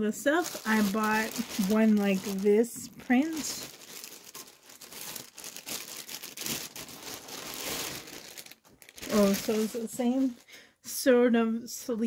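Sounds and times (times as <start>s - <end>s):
plastic bag crinkling: 0.3s - 10.6s.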